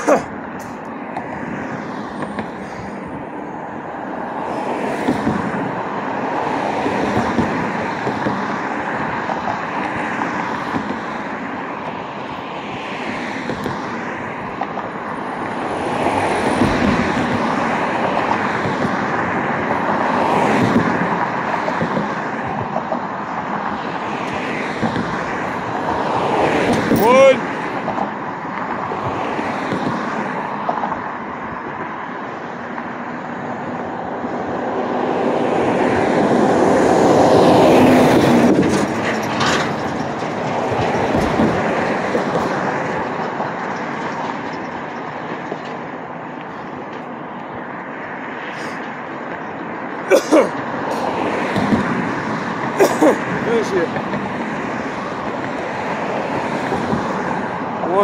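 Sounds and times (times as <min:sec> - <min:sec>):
cars passing: 0:00.0 - 0:58.0.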